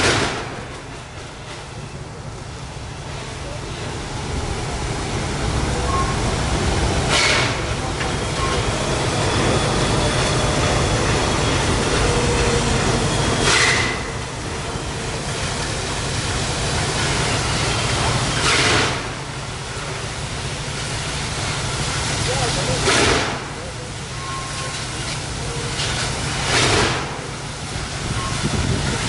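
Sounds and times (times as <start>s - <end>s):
steam locomotive exhaust chuffs: 0.0s - 29.0s.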